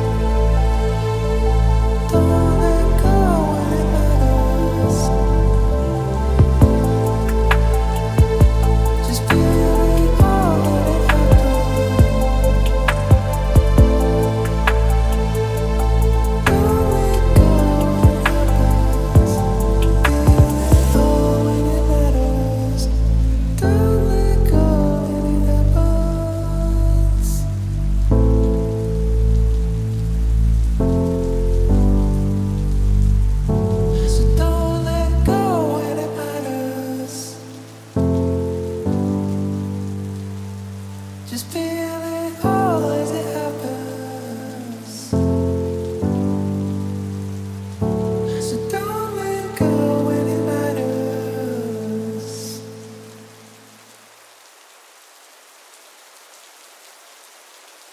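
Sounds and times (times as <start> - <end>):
synth chords: 0.0 - 26.6
deep bass: 0.0 - 35.4
downtempo music: 0.0 - 53.2
rain-like hiss: 0.0 - 57.9.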